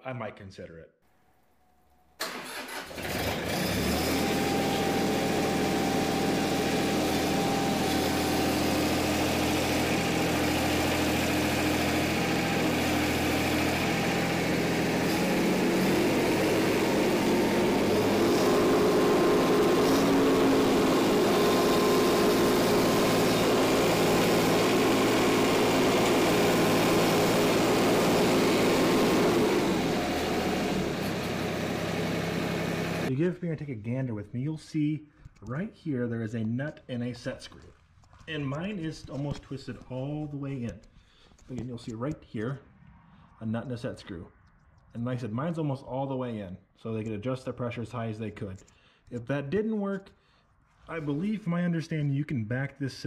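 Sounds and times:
tractor diesel engine running: 2.2s - 33.1s.

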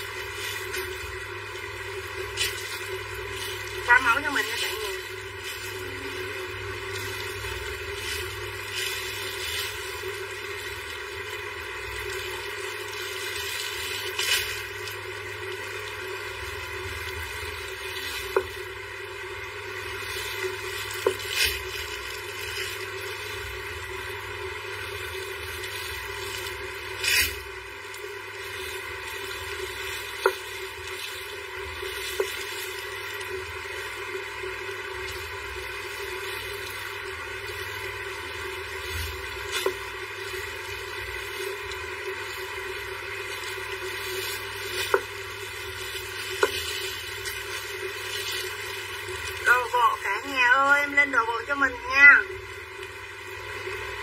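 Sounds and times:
steady background hum: 0.0s - 54.0s.

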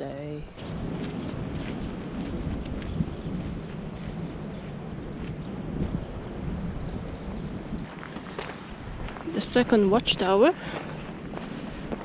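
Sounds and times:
wind buffeting microphone: 0.3s - 12.0s
footsteps on gravel: 0.6s - 6.2s, 7.9s - 12.0s.

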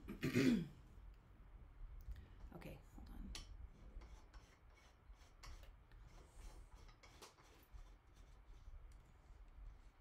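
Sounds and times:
light rubbing: 3.8s - 10.0s.

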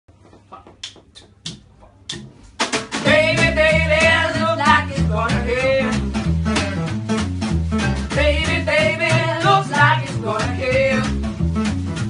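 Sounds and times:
steady drum beat: 0.8s - 12.0s
repeating bass line: 3.1s - 12.0s.

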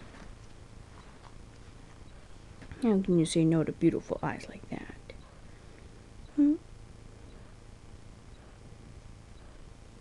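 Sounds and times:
woman speaking: 2.7s - 5.2s.

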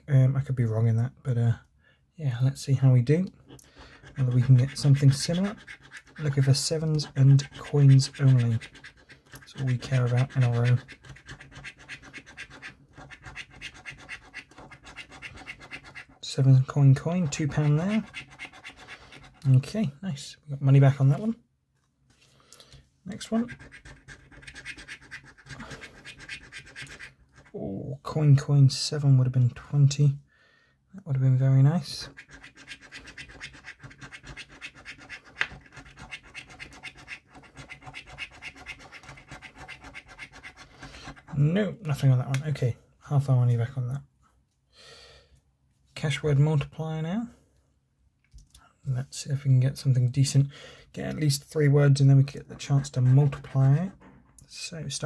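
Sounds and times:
coin scratching scratchcard: 3.9s - 16.2s, 17.2s - 19.4s, 23.4s - 27.5s, 32.0s - 41.3s.

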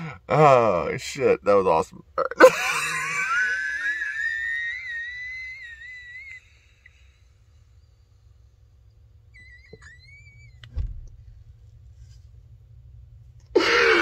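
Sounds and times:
low thump: 10.6s - 11.4s
man wheezing with suppressed laughter: 13.6s - 14.0s.

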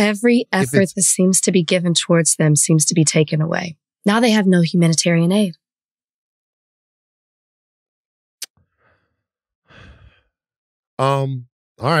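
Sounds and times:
person sighing: 9.7s - 10.1s.

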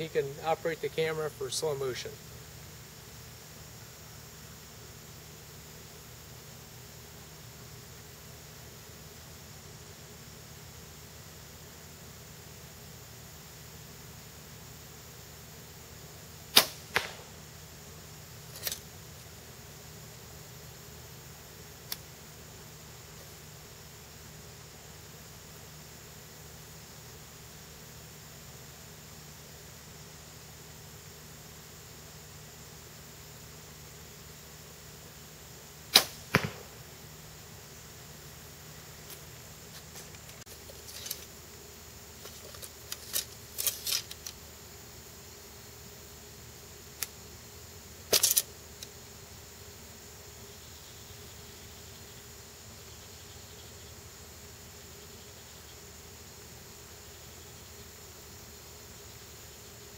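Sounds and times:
bow string snap: 16.5s - 17.3s, 21.8s - 22.1s, 35.9s - 36.7s
bow and arrows clicking and clattering: 18.5s - 18.9s, 39.8s - 41.3s, 42.2s - 44.4s, 48.1s - 48.9s.

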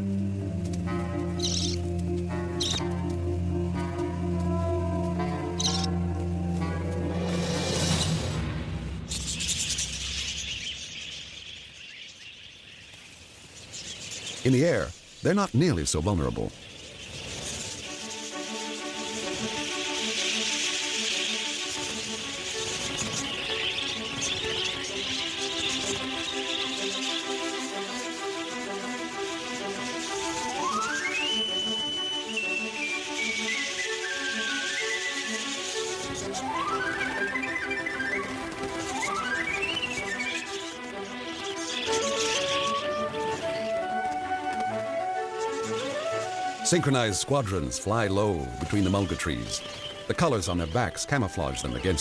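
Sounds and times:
soft repeating chords: 0.0s - 7.4s
background music: 0.0s - 10.4s, 17.5s - 52.0s
budgerigars chattering: 1.2s - 2.9s, 5.2s - 6.0s, 13.8s - 43.9s, 45.4s - 52.0s
whistle-like lead tone: 30.4s - 35.6s.

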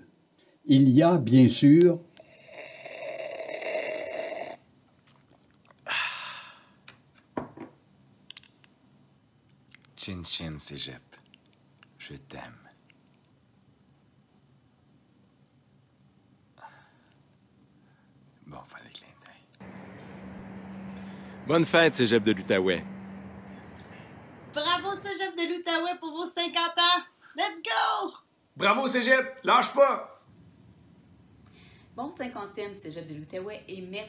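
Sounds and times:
steady hum with hiss: 0.0s - 34.0s
man making snore-like noise: 2.2s - 4.6s.

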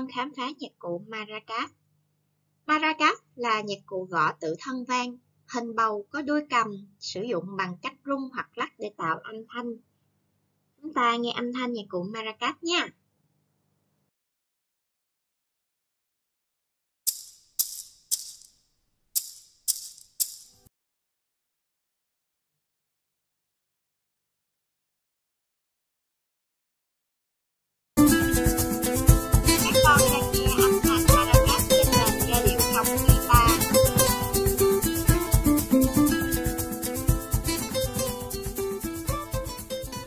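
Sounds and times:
maracas shaken: 17.1s - 18.6s, 19.2s - 20.7s, 28.0s - 40.0s
melody of pitched notes: 28.0s - 40.0s.

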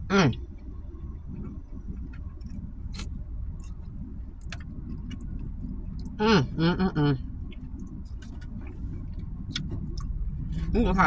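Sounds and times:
low rumble inside car: 0.0s - 11.0s.

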